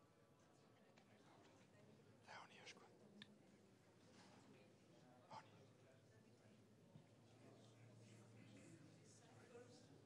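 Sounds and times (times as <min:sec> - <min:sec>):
faint murmur of low voices: 0:00.0 - 0:10.0.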